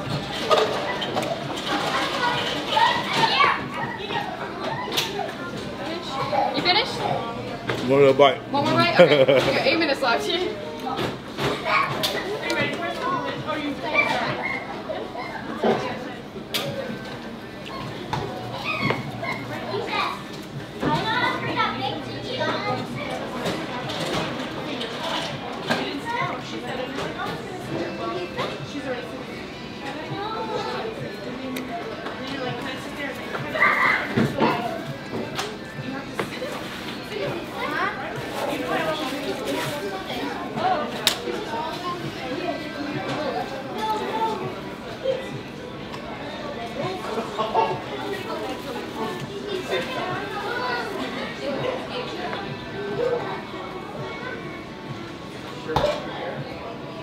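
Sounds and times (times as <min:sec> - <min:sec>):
people chattering: 0:00.0 - 0:57.0.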